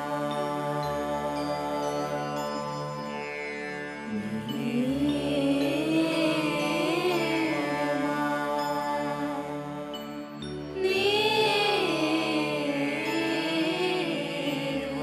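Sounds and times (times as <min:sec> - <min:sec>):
chant-like singing: 0:00.0 - 0:02.6, 0:04.1 - 0:15.0
steady drone: 0:04.1 - 0:15.0.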